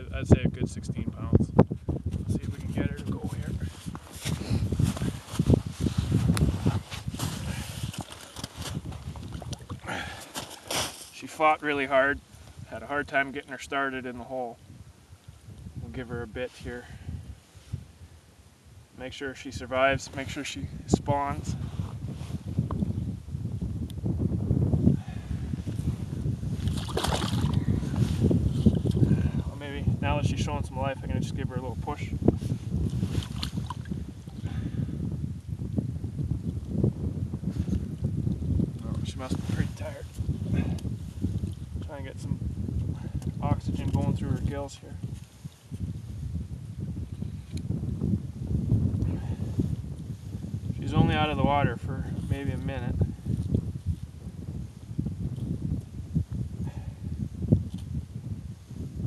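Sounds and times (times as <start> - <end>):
wind buffeting microphone: 0.0 - 59.0
water sloshing: 26.6 - 27.6.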